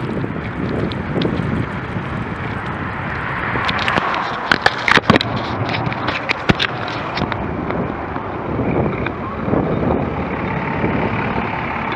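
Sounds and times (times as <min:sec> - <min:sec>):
bus engine running: 0:00.0 - 0:11.9
slow-moving traffic rumble: 0:00.0 - 0:11.9.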